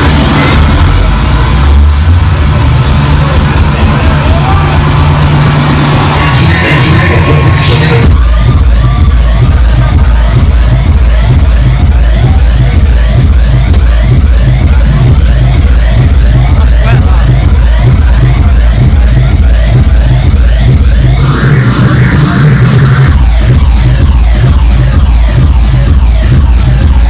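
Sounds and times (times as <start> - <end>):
electronic dance music: 0.0 - 27.0
steady kick drum: 0.0 - 27.0.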